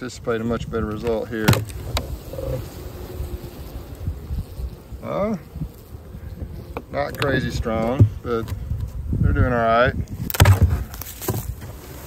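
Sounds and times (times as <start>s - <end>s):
honeybees humming: 0.0s - 12.0s.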